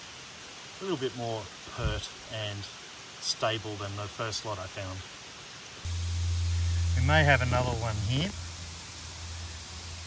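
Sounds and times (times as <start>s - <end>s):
louder hiss: 0.0s - 10.0s
outdoor background hiss: 0.0s - 10.0s
steady low hum: 5.8s - 10.0s.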